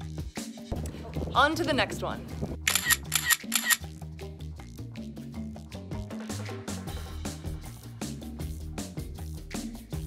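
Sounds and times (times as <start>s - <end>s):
background music with steady beat: 0.0s - 10.0s
camera shutter clicks: 2.7s - 3.8s.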